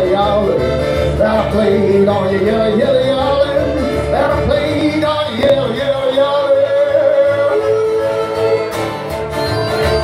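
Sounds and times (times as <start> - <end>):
acoustic guitar: 0.0 - 10.0
folk band playing: 0.0 - 10.0.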